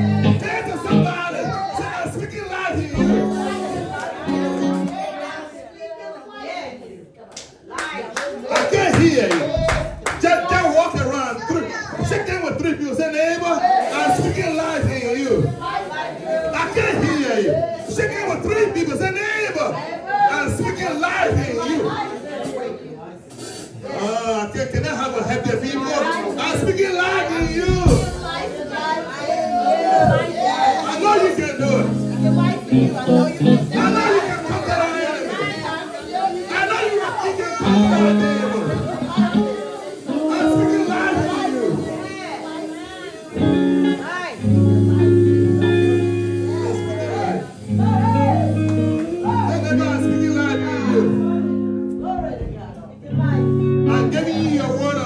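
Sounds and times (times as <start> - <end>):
loud voice over a microphone: 0.0 - 6.0, 29.3 - 35.7, 36.6 - 42.6
crowd chatter: 0.0 - 55.0
hand clapping: 7.3 - 10.3, 48.6 - 49.2.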